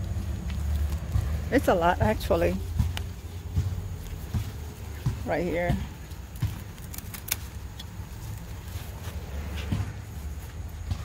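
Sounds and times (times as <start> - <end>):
low outdoor rumble: 0.0 - 11.0
phone brushing through leaves: 0.0 - 11.0.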